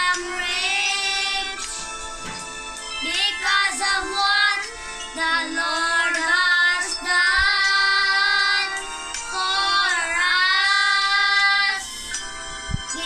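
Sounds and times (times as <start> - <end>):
boys singing worship song: 0.0 - 13.0.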